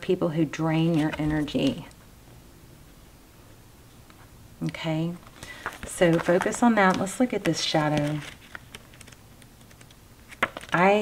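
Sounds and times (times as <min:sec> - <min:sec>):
paper handling: 0:00.8 - 0:01.8, 0:05.2 - 0:10.9.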